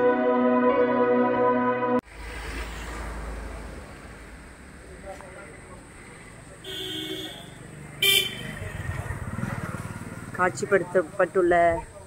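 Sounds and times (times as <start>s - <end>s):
vehicle horn toot: 6.6s - 8.7s.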